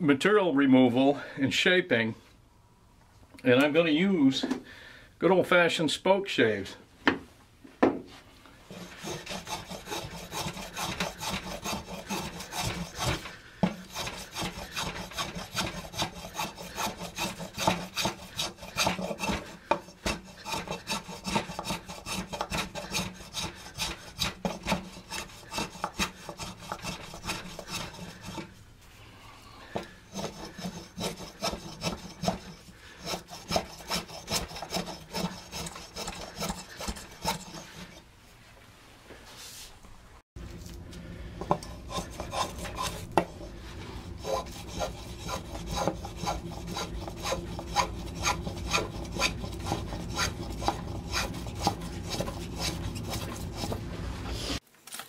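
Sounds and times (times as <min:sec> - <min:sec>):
spokeshave scraping wood: 0:08.6 - 0:28.8, 0:29.6 - 0:38.1, 0:40.4 - 0:54.6.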